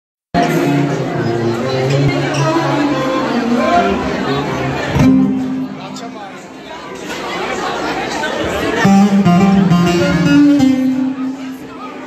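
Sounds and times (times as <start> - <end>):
plucked string instrument: 0.4 - 6.4, 8.4 - 12.0
people chattering: 0.4 - 12.0.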